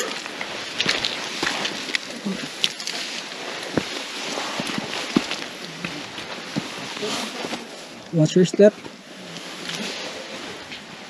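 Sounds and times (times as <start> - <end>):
footsteps on dirt trail: 0.0 - 11.0.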